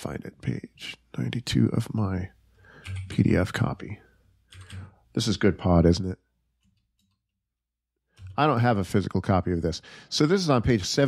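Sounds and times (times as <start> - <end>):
man speaking: 0.0 - 2.4, 3.0 - 4.2, 5.1 - 6.3, 8.3 - 11.0
computer keyboard clicks: 2.8 - 3.2, 4.5 - 4.9, 6.6 - 7.3, 8.2 - 8.8.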